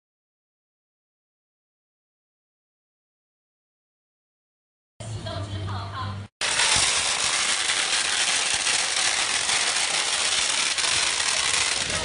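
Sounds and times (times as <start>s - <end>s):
firecrackers crackling: 6.4s - 12.0s.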